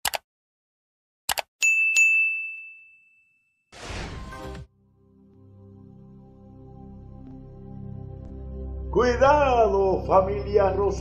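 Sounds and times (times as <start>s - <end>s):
bright bell ding: 1.6s - 3.6s.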